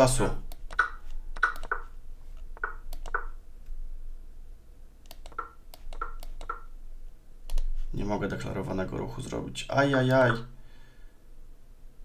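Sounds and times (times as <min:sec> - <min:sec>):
computer mouse clicking: 0:00.5 - 0:03.4, 0:05.0 - 0:06.7, 0:07.5 - 0:07.7.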